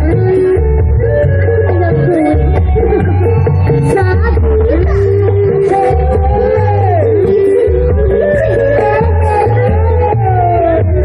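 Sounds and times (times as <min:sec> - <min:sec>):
live band playing through pa: 0:00.0 - 0:11.0
pulsing bass: 0:00.0 - 0:11.0
sliding lead melody: 0:00.0 - 0:11.0.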